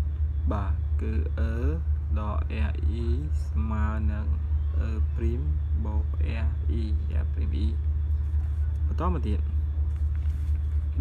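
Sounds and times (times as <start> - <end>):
voice: 0.5 - 7.8, 8.8 - 9.6.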